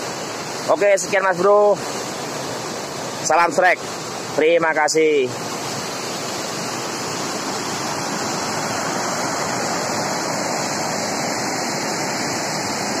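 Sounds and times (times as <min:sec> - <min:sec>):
river rushing over rocks: 0:00.0 - 0:13.0.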